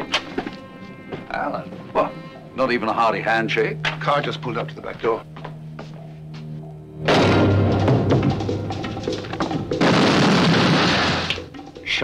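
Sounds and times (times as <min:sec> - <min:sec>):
dramatic trailer music: 0:00.0 - 0:12.0
explosion blast: 0:07.1 - 0:08.4, 0:09.8 - 0:11.5.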